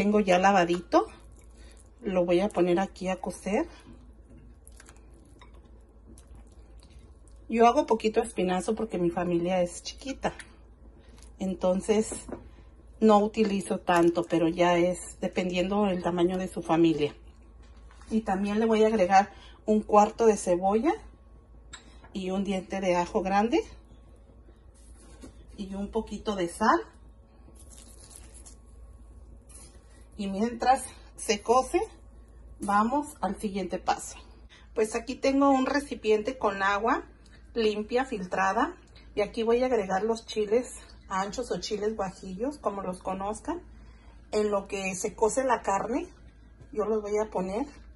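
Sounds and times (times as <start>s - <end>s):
water boiling in a pot: 0.0s - 12.4s.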